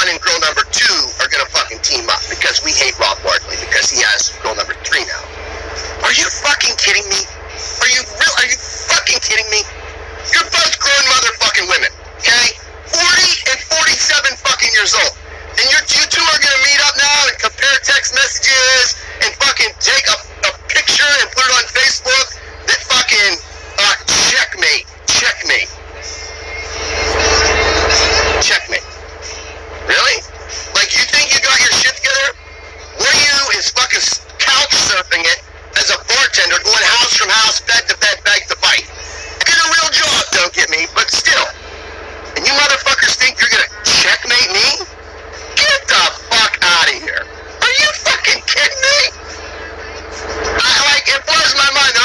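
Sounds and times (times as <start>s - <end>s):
man speaking: 0.0s - 25.8s, 27.2s - 29.0s, 29.9s - 32.4s, 33.0s - 41.7s, 42.3s - 49.4s, 50.5s - 52.0s
truck cab hum and hiss: 0.0s - 52.0s.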